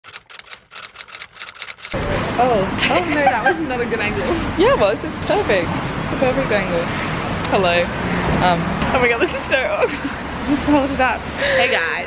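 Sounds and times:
typewriter keys clacking: 0.0 - 2.0.

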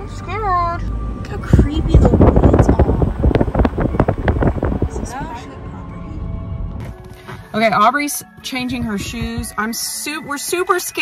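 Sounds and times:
wind buffeting microphone: 1.2 - 6.8.

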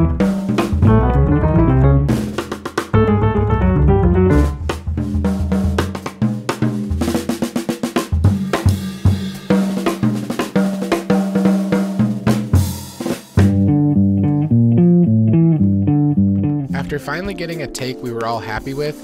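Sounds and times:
repeating bass line: 0.0 - 2.2, 3.0 - 4.6, 13.5 - 17.1
jazz drum kit solo: 0.0 - 14.2
jazz band playing fast line: 0.0 - 15.0.

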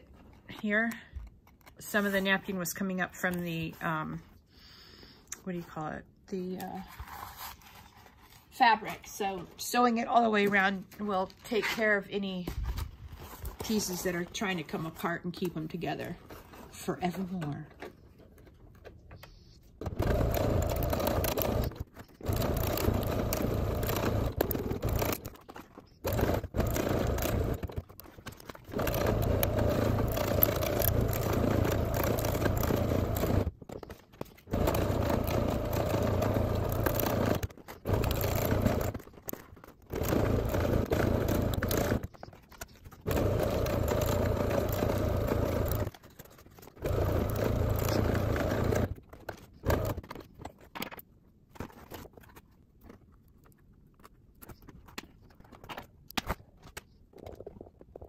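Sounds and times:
electric sewing machine stitching: 19.8 - 25.4, 26.0 - 33.6, 34.4 - 39.1, 39.9 - 42.2, 43.0 - 46.0, 46.8 - 49.0, 49.6 - 50.2.

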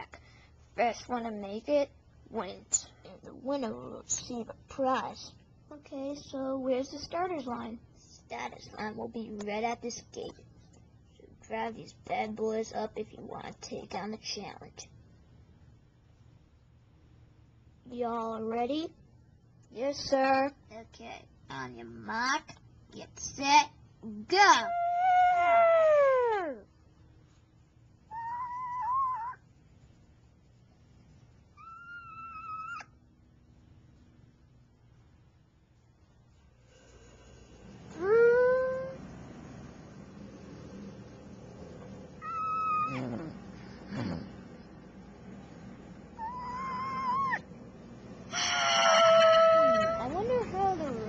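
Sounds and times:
high-pitched vocal calls: 28.1 - 29.4, 31.6 - 33.0, 42.2 - 44.2, 46.2 - 47.4
child imitating motorbike engines: 38.0 - 39.0, 42.8 - 44.2.

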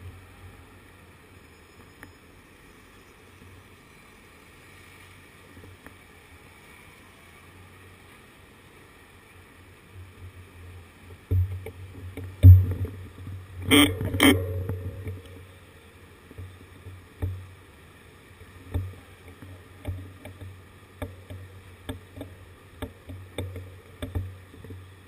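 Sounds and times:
small knocks and clicks: 18.7 - 24.9.

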